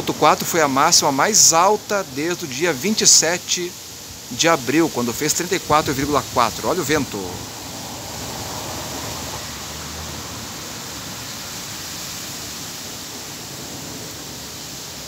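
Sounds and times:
gusty wind: 0:00.0 - 0:15.0.

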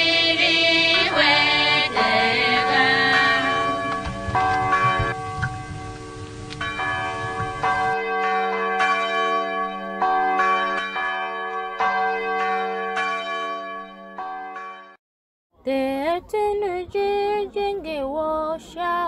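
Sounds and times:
bells ringing: 0:00.0 - 0:15.0.

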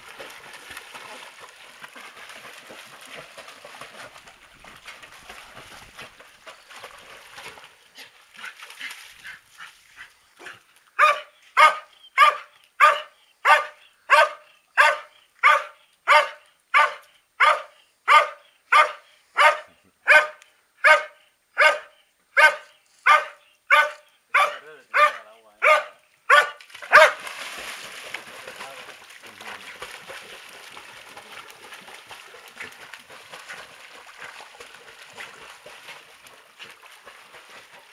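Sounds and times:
dog barking: 0:11.0 - 0:27.2.

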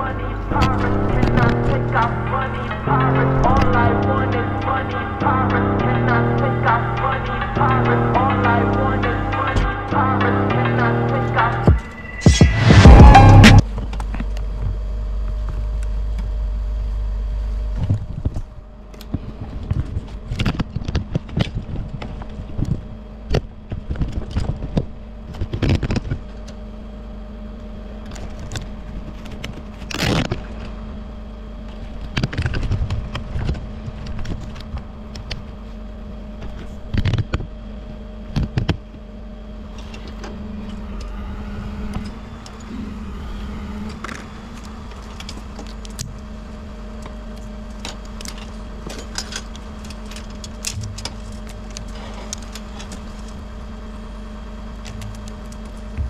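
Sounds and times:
truck engine idling: 0:00.0 - 0:13.6.

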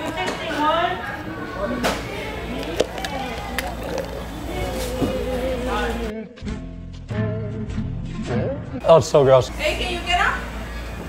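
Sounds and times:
people talking in background: 0:00.0 - 0:06.1.

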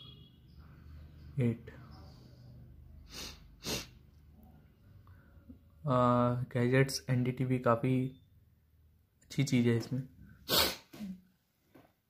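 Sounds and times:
person sharp breath: 0:02.0 - 0:04.0, 0:10.4 - 0:11.1.

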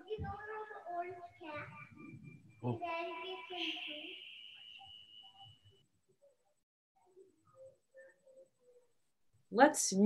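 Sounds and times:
steady high-pitched tone: 0:01.0 - 0:05.8.

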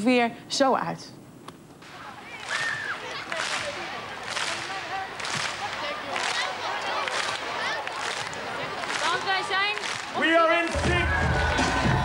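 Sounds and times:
crowd cheering: 0:01.9 - 0:12.0
crowd clapping in unison: 0:02.4 - 0:12.0.

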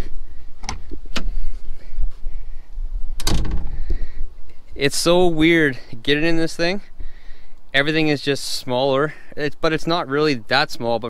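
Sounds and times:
wind rumble on microphone: 0:00.0 - 0:05.4
cab door being handled: 0:03.2 - 0:03.7.

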